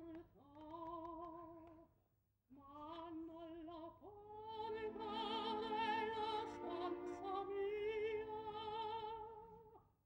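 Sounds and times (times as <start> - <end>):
operatic soprano singing: 2.6 - 9.8.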